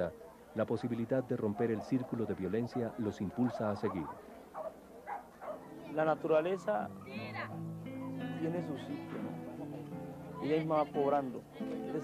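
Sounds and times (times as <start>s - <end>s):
dog barking faintly: 0.0s - 8.6s.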